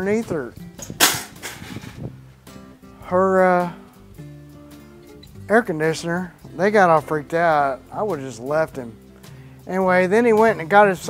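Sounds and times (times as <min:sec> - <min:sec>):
wire cage clanking down: 0:00.8 - 0:02.1.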